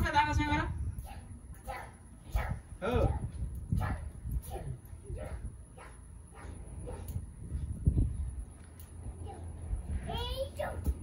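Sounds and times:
children's high vocal sounds: 0:01.0 - 0:07.2.

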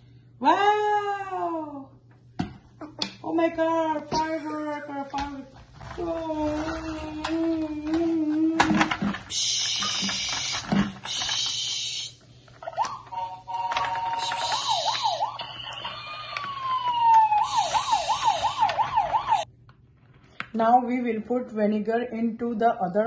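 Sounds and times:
toy siren sweeping up and down: 0:12.7 - 0:19.5.

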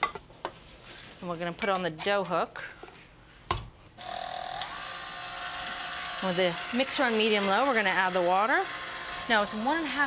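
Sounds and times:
stand mixer motor whining: 0:04.1 - 0:10.0.

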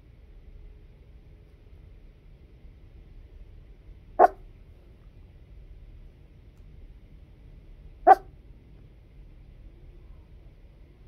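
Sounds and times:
faint low hum: 0:00.0 - 0:11.0
dog barking: 0:04.2 - 0:04.4, 0:08.1 - 0:08.3.

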